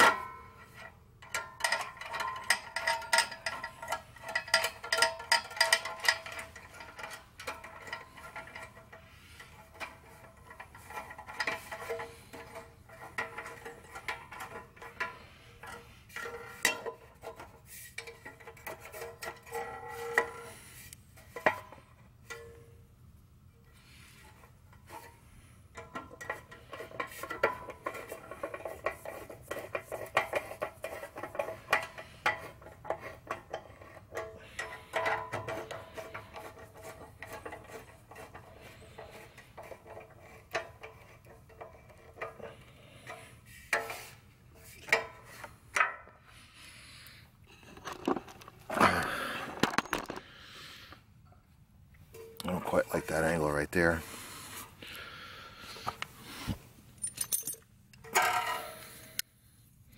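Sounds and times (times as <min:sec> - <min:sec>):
clicks and rubbing of parts: 0:00.0 - 0:22.8, 0:23.7 - 0:46.3, 0:47.0 - 0:51.0, 0:55.7 - 0:59.3
faint steady tone: 0:19.6 - 0:26.4
small metallic clinks: 0:57.0 - 0:59.2.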